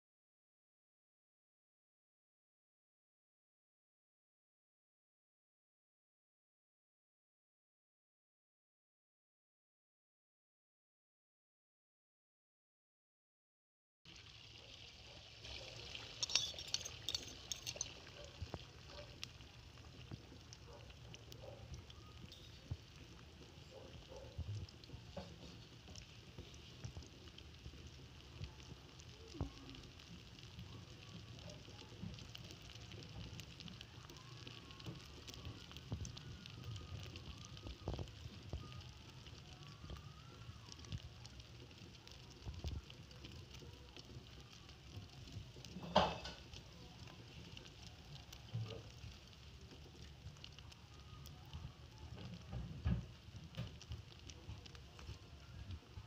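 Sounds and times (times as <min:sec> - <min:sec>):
omelette sizzling in oil: 0:14.1 - 0:56.0.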